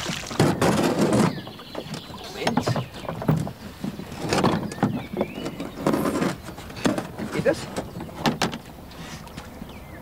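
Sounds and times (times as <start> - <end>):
oars splashing in water: 0.0 - 8.5.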